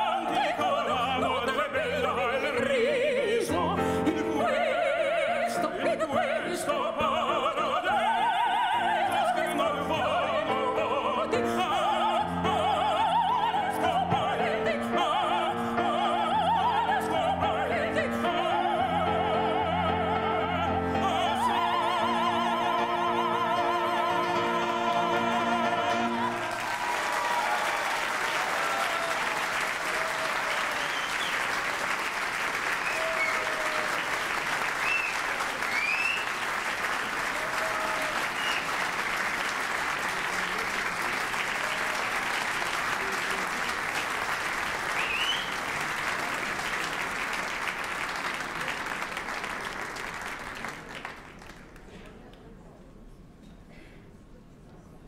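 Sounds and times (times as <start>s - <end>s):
operatic vocal duet: 0.0s - 30.2s
audience applauding and cheering: 25.3s - 51.9s.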